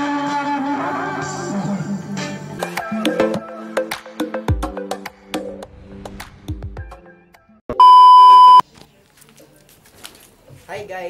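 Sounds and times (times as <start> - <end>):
high electronic beep: 7.8 - 8.6.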